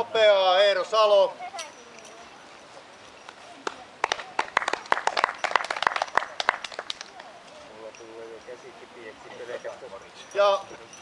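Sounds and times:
small group clapping: 0:03.3 - 0:07.4.

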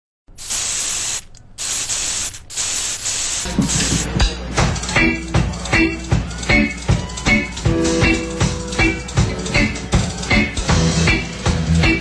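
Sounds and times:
spray-paint can hissing: 0:00.3 - 0:04.1.

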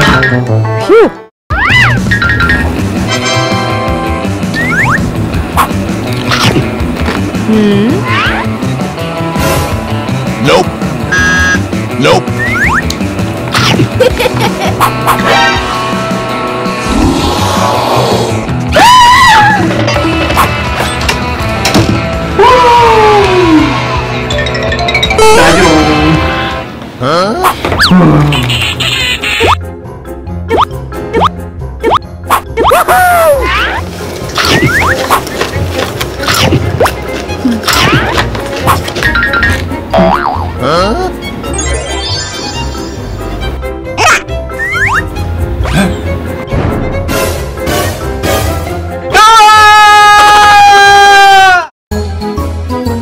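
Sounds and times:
playful background music: 0:00.0 - 0:53.0
cartoon bloop rising in pitch: 0:04.6 - 0:05.0, 0:12.4 - 0:12.8, 0:30.5 - 0:33.0
man screaming high-pitched: 0:49.1 - 0:51.7.

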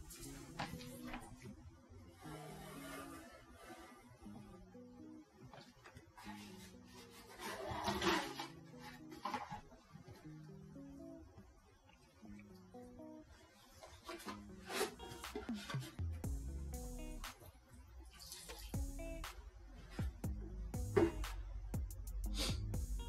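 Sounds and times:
music with stepped bass line: 0:00.0 - 0:00.8, 0:15.0 - 0:17.4, 0:18.6 - 0:23.0
plastic container handling noises: 0:05.5 - 0:09.7.

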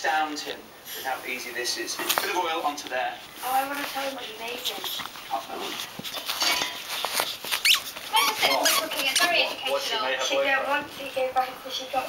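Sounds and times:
toy squeak: 0:07.6 - 0:09.3.

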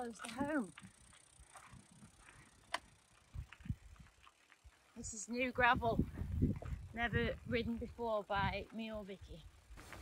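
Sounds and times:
bike tyres crunching on gravel: 0:00.0 - 0:08.0, 0:09.5 - 0:10.0.

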